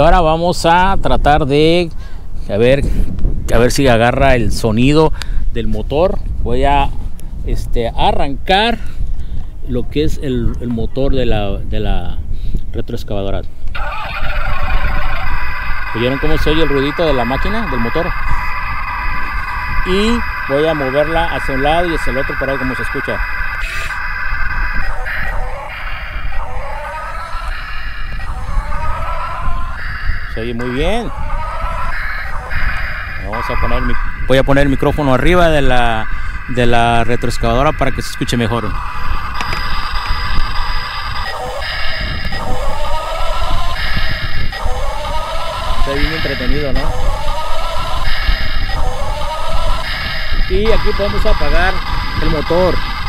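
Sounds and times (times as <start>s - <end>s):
electronic engine drone: 13.8s - 53.0s
rising whine: 13.8s - 53.0s.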